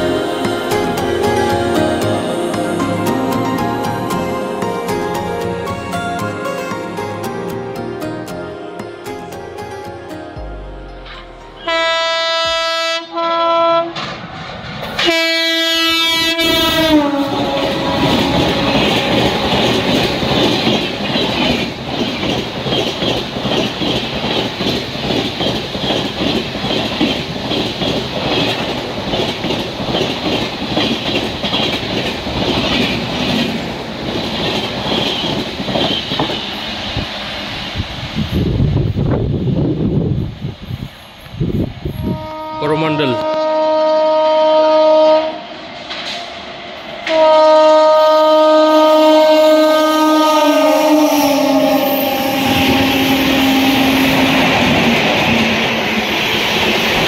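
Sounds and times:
train horn blasts: 11.0s - 14.2s, 15.0s - 20.1s, 41.9s - 45.6s, 47.0s - 54.7s
train wheels clattering on rails: 13.9s - 15.3s, 16.4s - 37.4s, 45.6s - 47.8s.

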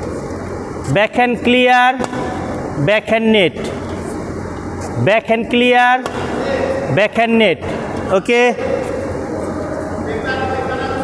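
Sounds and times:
rushing background noise: 0.0s - 11.0s.

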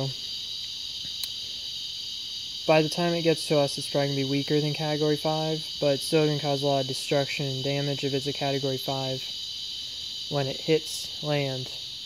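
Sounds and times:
cicadas buzzing: 0.0s - 12.0s.

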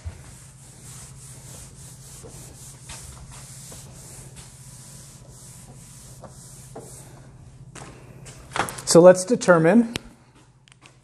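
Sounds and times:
cloth wiping a whiteboard: 0.0s - 8.1s.

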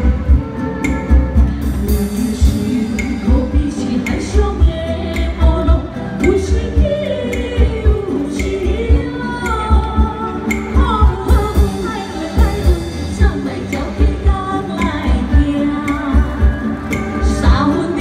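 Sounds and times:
woman singing: 0.0s - 18.0s.

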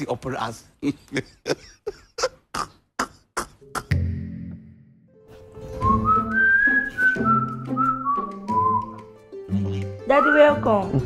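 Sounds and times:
light instrumental accompaniment: 3.6s - 11.0s
whistled tune: 5.6s - 9.2s, 10.0s - 11.0s.

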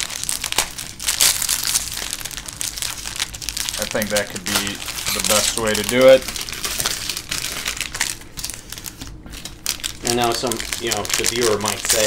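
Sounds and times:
plastic wrappers crinkling: 0.0s - 12.0s.

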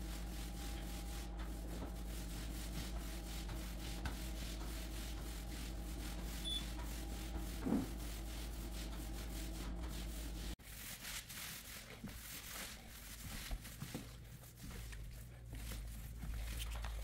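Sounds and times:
steady low hum: 0.0s - 10.6s
roller rubbing over hardwood floor: 0.0s - 17.0s.

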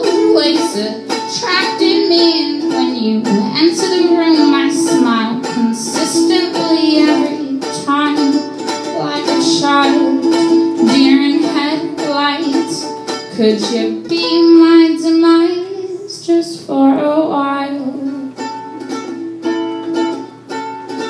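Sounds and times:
woman singing: 0.0s - 18.4s
ukulele strumming: 0.0s - 21.0s.

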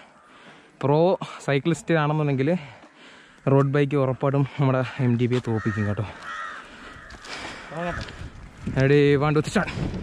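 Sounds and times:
crow cawing: 5.4s - 8.4s.

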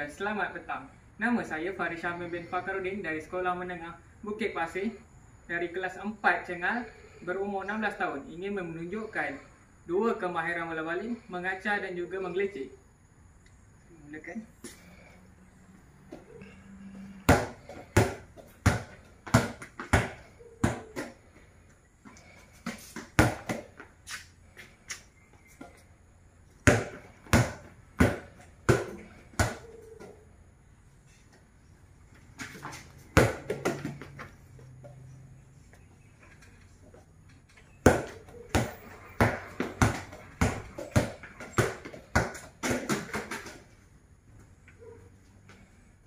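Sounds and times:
ball bouncing on tiled floor: 17.2s - 21.2s, 22.1s - 24.2s, 26.6s - 30.2s, 32.4s - 35.1s, 36.9s - 43.8s.

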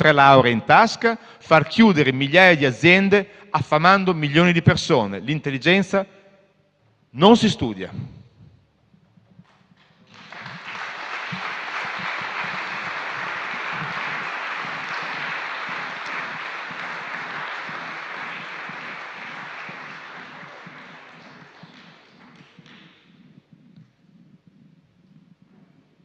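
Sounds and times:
audience applause: 10.0s - 22.9s.

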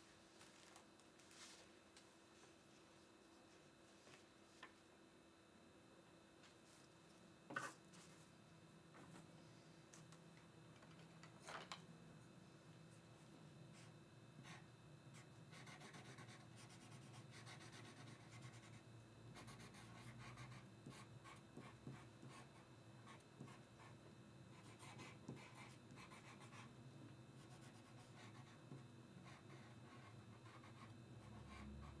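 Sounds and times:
low steady hum: 0.0s - 32.0s
drawing tool scratching on paper: 15.5s - 18.8s.

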